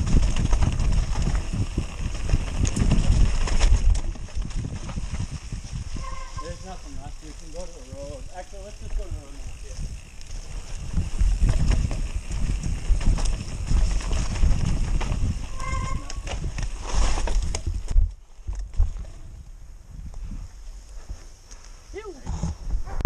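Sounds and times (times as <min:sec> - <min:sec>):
tyres running over dirt: 0:00.0 - 0:19.4
bike rattling over bumps: 0:00.0 - 0:19.5
wind buffeting microphone: 0:00.0 - 0:21.2
brake squeal: 0:06.0 - 0:06.8, 0:15.5 - 0:16.2.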